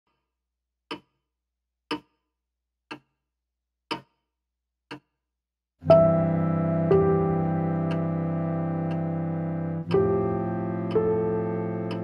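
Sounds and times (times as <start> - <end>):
sharp ticks: 7.8 - 8.2, 9.8 - 12.0.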